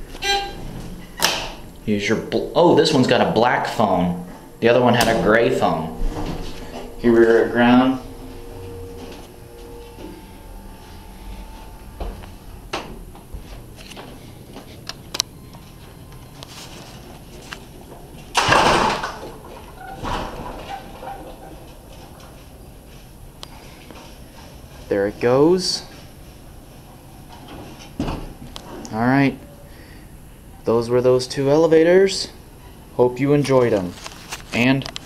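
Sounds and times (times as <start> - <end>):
elevator doors sliding open: 0.0 - 22.9
elevator hum: 0.0 - 33.0.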